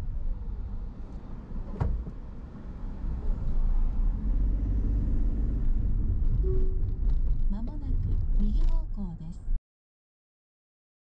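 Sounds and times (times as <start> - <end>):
engine and tyre rumble: 0.0 - 9.6.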